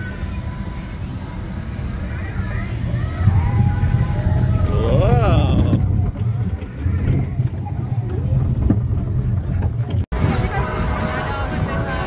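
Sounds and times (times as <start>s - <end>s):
ride car rumbling on track: 0.0s - 12.0s
vocal cry: 4.6s - 5.8s.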